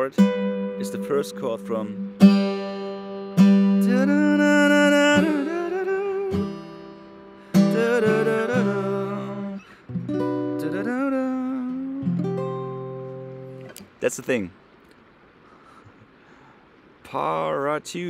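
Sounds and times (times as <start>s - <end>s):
acoustic guitar chords ringing: 0.0s - 14.8s
man singing: 3.8s - 6.7s, 7.6s - 9.7s, 10.5s - 12.2s.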